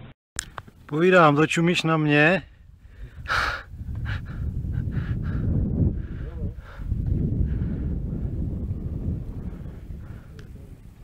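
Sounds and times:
wind rumble on microphone: 2.4s - 11.0s.

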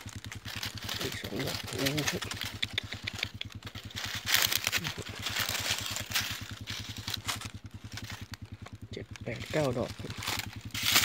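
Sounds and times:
dry leaves rustling by hand: 0.0s - 11.0s
small engine idling: 0.0s - 11.0s.

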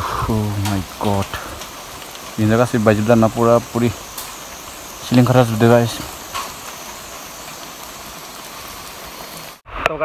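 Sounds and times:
steady rain hiss: 0.0s - 10.0s.

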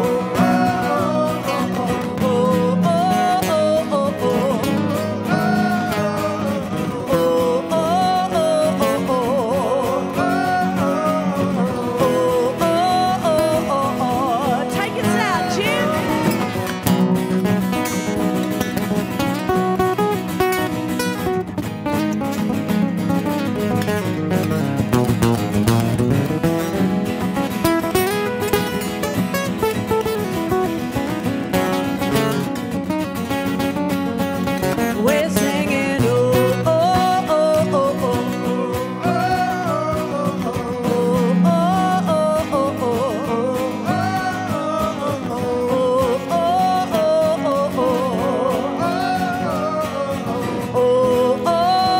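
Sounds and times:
woman singing: 0.0s - 16.7s, 34.9s - 51.9s
acoustic guitars strumming: 0.0s - 51.9s.

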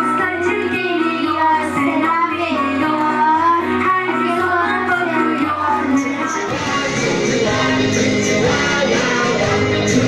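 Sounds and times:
music backing track with bass: 0.0s - 10.0s
children singing: 4.4s - 10.0s.

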